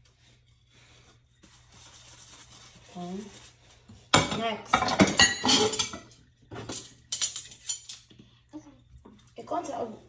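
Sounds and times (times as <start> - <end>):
cutlery and dishes clinking in sink: 4.1 - 8.4.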